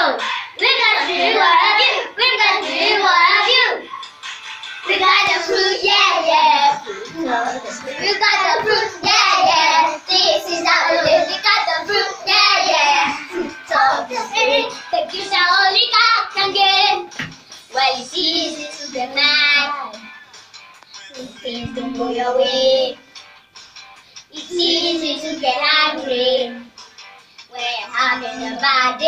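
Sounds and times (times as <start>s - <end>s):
children singing: 0.0s - 4.0s, 4.9s - 17.1s, 21.1s - 23.0s, 24.4s - 26.7s.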